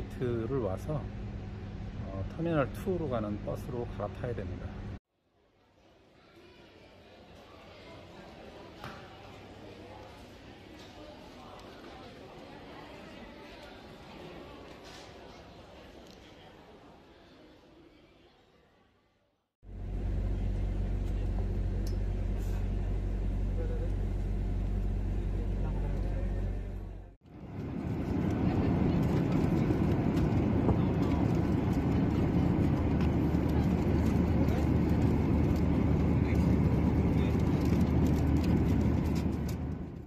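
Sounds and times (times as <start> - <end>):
airliner cabin drone: 0.0 - 5.0, 19.7 - 40.0
bus engine hum: 19.7 - 40.0.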